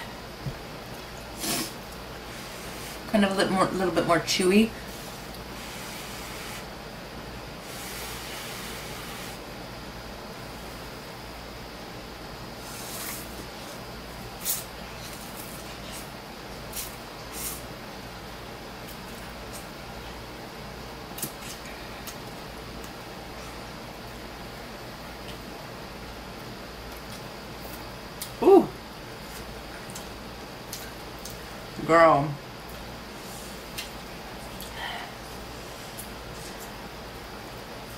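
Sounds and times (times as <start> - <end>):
steady background hiss: 0.0 - 37.9.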